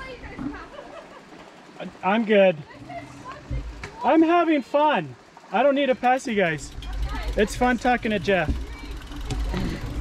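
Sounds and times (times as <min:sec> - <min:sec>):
outdoor background noise: 0:00.0 - 0:10.0
distant voices talking: 0:05.2 - 0:10.0.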